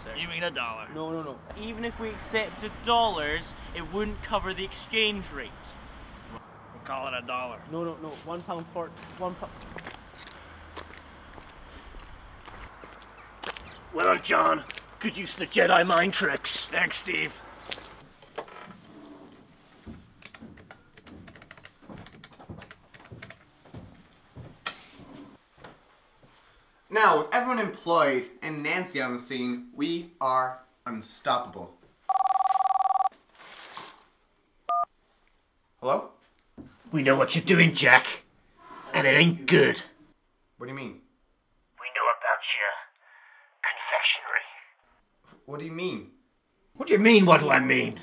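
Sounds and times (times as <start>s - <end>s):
faint outdoor background noise: 0.0s - 48.0s
mobile phone ringing: 32.1s - 33.1s
faint noise: 40.6s - 45.0s.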